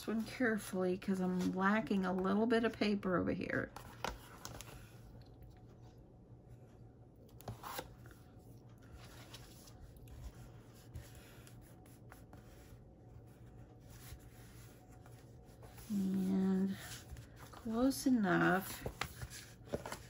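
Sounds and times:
low steady hum: 0.0s - 20.0s
paper rustling and rubbing: 7.4s - 20.0s.

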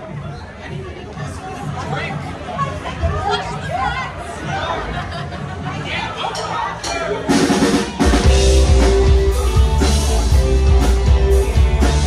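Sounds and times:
drums: 0.0s - 12.0s
bass guitar: 7.1s - 12.0s
electric guitars: 7.3s - 12.0s.

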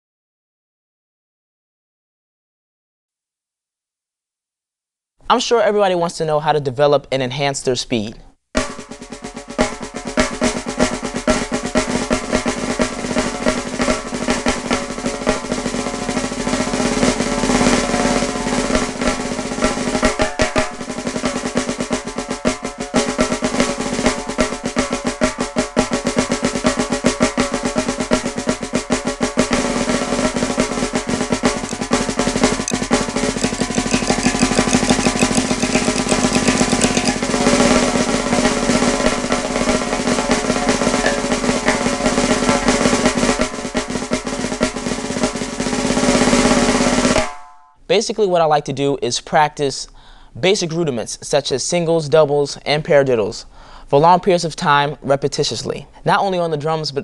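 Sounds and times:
snare drum rolls: 8.6s - 47.6s.

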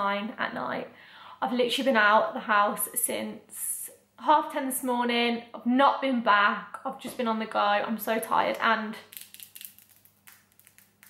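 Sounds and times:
nails clicking: 9.0s - 11.0s.

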